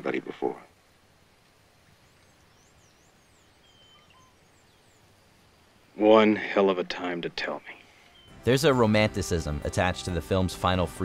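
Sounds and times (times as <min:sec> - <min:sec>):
high bird chirps: 0:02.0 - 0:05.2, 0:07.5 - 0:08.4.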